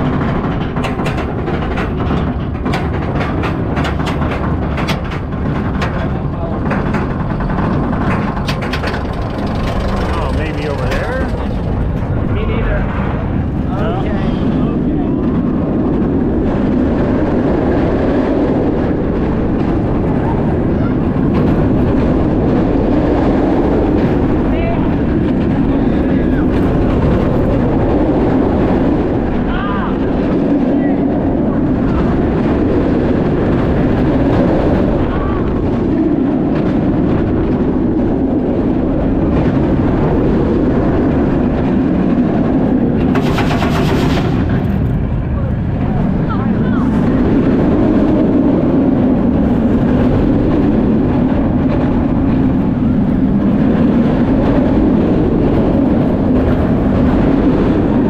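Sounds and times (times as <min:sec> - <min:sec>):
roller coaster rumbling on track: 0:00.0 - 0:58.0
wind rushing over camera: 0:00.0 - 0:58.0.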